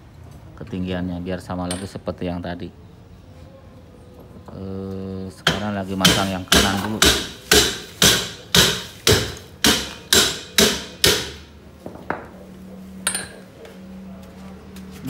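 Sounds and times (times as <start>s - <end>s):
hammer striking metal: 5.4s - 11.5s.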